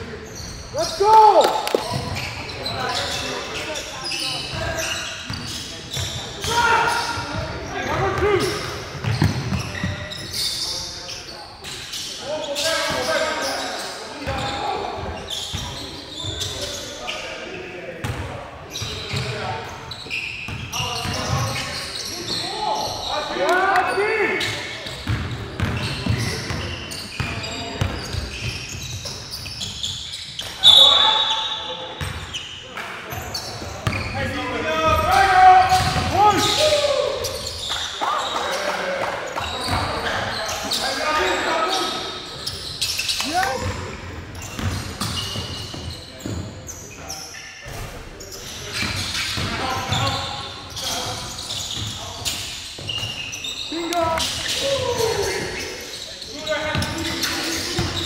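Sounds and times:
sneaker squeaks: 0.1 - 58.0
players calling out: 0.2 - 11.3, 33.1 - 47.4, 48.4 - 58.0
basketball bouncing on wooden floor: 35.8 - 36.1.

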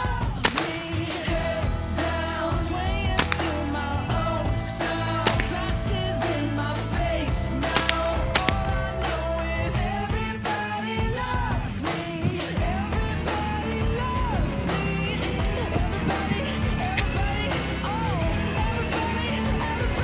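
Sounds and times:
pop song with singing: 0.0 - 20.0
rifle shots: 0.4 - 1.1, 3.2 - 4.0, 5.2 - 6.1, 7.6 - 9.2.

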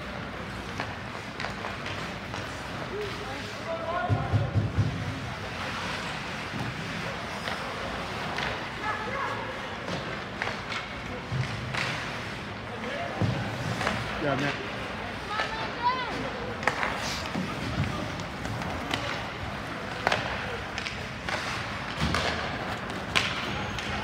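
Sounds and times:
hockey sticks and puck clacking: 0.0 - 24.0
steady rink noise: 0.0 - 24.0.

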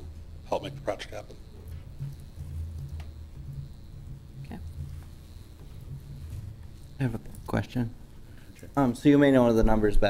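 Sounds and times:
low uneven room rumble: 0.0 - 10.0.

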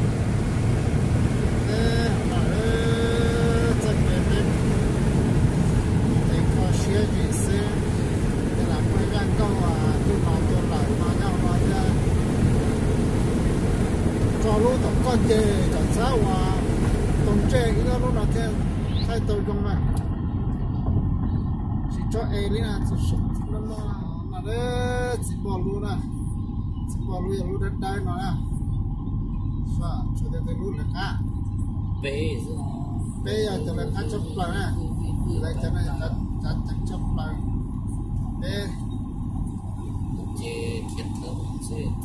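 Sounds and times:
car road and engine noise: 0.0 - 42.0
person talking: 1.7 - 4.6, 32.0 - 37.4
voices talking faintly: 14.3 - 42.0.

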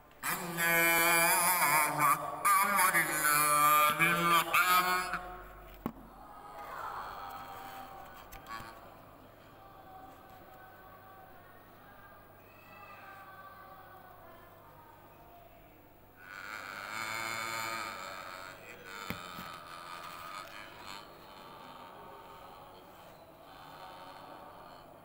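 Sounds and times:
man chanting over loudspeakers: 0.2 - 5.6.

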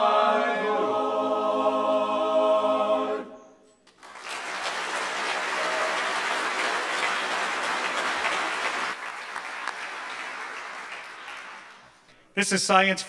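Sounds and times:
audience applauding: 3.9 - 12.1.

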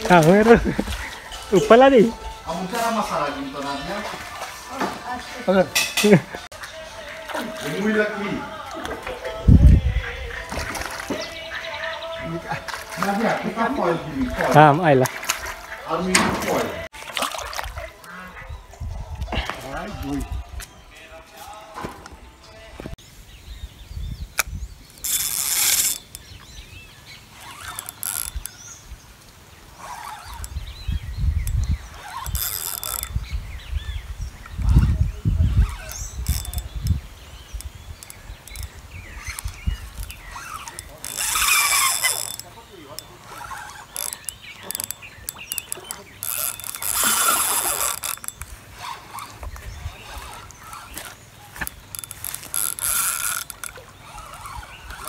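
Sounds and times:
fishing reel ratcheting clicks: 24.4 - 26.4, 27.4 - 28.6, 30.0 - 30.6, 31.4 - 33.2, 35.7 - 37.0, 37.6 - 49.4, 50.0 - 55.0.

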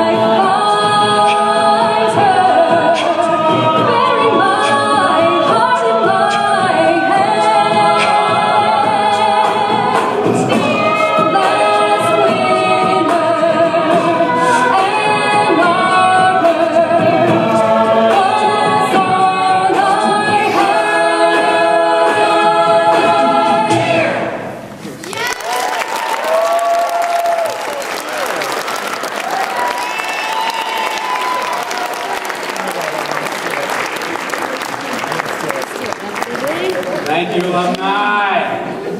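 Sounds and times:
a cappella group singing: 0.0 - 24.8
shouts from audience: 25.0 - 32.2
audience applauding: 25.0 - 38.0.

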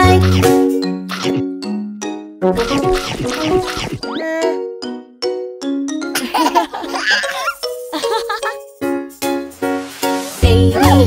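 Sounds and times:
gentle children's music: 0.0 - 11.0
baby giggling and laughing: 6.1 - 8.6.

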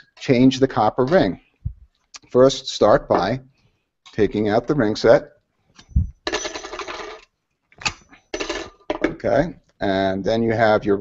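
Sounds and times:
metal plates clinking and rattling: 6.3 - 9.2.

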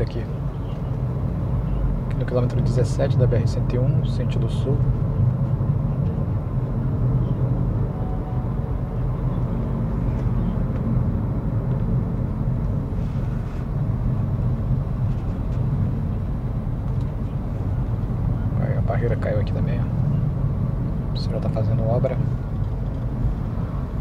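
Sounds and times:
car road and engine rumble: 0.0 - 24.0.

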